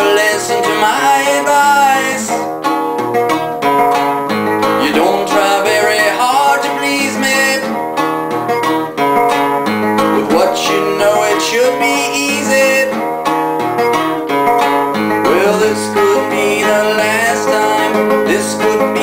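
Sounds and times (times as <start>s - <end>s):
classical guitar riff: 0.0s - 19.0s.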